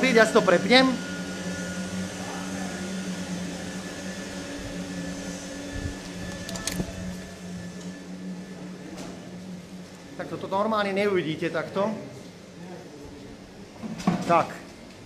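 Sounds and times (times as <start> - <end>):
factory machinery hum: 0.0 - 13.9.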